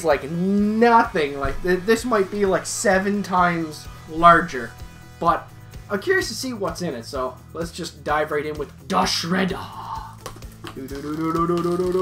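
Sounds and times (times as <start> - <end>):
person humming a long note: 10.8 - 12.0.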